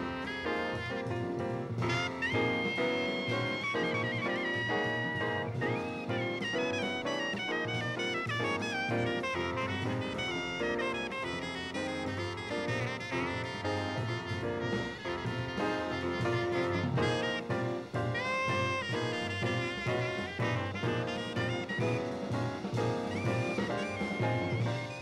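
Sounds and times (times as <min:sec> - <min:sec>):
double bass: 0:00.0 - 0:25.0
drums: 0:00.0 - 0:25.0
piano: 0:00.0 - 0:25.0
soprano saxophone solo: 0:00.0 - 0:25.0.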